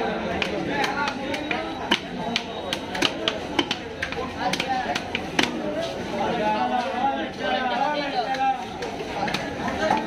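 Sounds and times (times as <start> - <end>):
voices chattering: 0.0 - 10.0.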